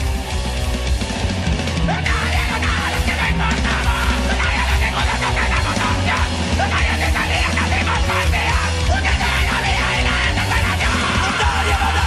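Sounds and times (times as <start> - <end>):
hard rock music: 0.0 - 12.0
heavy bass line: 0.0 - 12.0
shouted vocals: 1.7 - 12.0.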